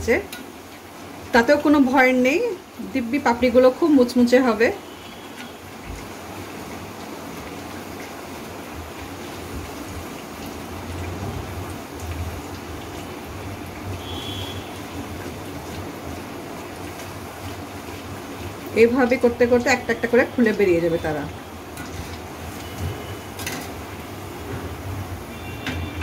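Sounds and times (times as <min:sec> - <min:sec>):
dough sizzling in hot oil: 0:00.0 - 0:26.0.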